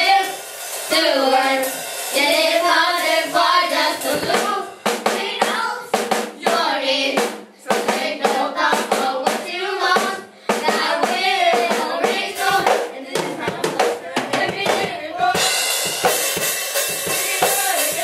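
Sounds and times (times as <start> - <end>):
children singing into microphones: 0.0 - 18.0
drum kit beat: 0.0 - 18.0.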